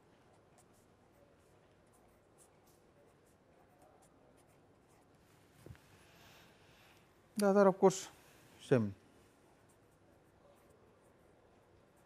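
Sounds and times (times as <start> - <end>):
pen scratching on paper: 0.0 - 5.2, 9.5 - 12.0.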